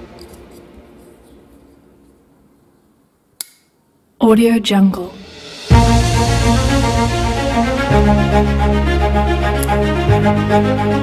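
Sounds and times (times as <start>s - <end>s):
soft background music: 4.9s - 11.0s.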